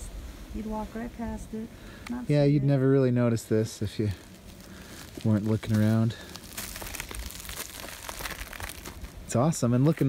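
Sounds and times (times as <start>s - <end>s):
footsteps on dry forest litter: 3.7s - 10.0s.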